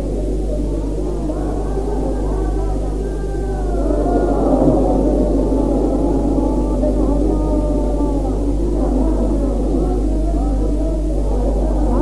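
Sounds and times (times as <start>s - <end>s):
gliding human voices: 0.0s - 12.0s
steady low hum: 0.0s - 12.0s.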